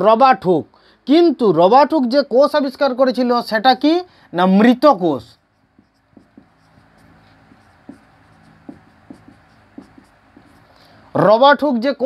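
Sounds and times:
marker scratching on whiteboard: 4.7 - 10.8
marker tip tapping board: 5.6 - 10.7.

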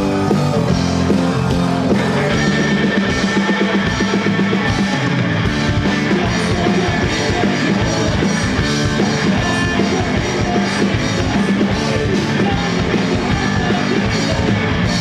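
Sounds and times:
drum kit: 0.0 - 15.0
electric bass: 0.0 - 15.0
electric guitars: 0.0 - 15.0
man singing: 1.7 - 15.0.

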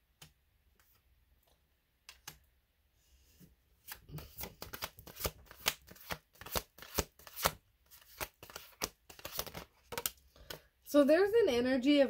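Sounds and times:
cards being shuffled: 3.8 - 10.6.

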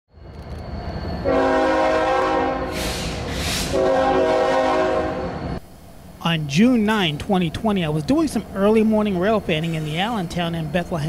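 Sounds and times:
train rumbling: 0.1 - 11.0
locomotive air horn blasts: 1.2 - 5.4
air hiss: 2.7 - 3.8.

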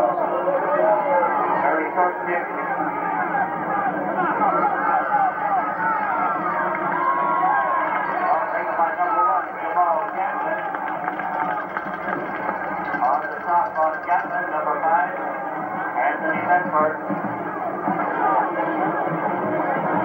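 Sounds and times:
people talking indistinctly: 0.0 - 20.0
steady background noise: 0.0 - 20.0.

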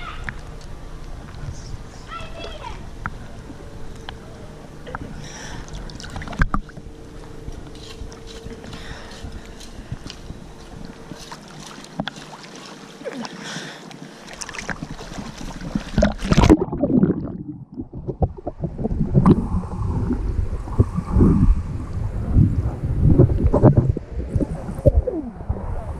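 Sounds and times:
muffled underwater sloshing: 2.9 - 8.2, 8.8 - 25.9
water lapping and splashing: 5.2 - 25.9.

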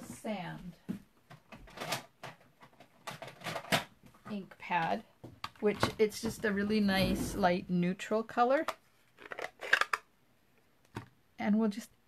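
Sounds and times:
plastic case clicks and scrapes: 1.6 - 3.9, 8.6 - 10.1.

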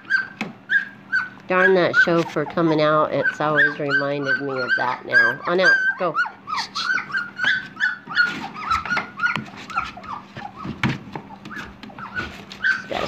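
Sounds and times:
puppies squealing and whimpering: 0.0 - 13.0.

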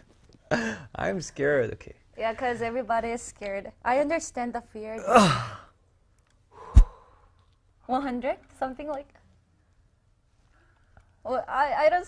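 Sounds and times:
man straining exhale: 6.5 - 7.3.

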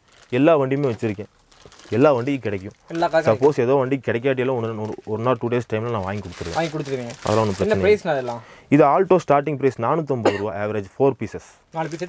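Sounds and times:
man talking in a low voice: 0.3 - 1.3, 1.9 - 12.0.

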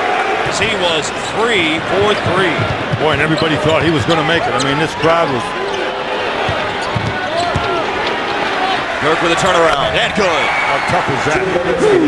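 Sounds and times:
arena crowd noise: 0.0 - 12.0
basketball bouncing on hardwood: 2.0 - 4.1, 6.4 - 7.8.

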